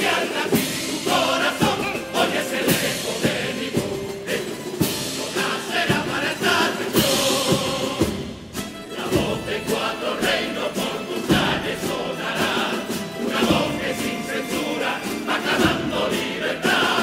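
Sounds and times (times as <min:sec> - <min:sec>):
instrumental accompaniment: 0:00.0 - 0:17.0
male choir singing: 0:00.0 - 0:17.0.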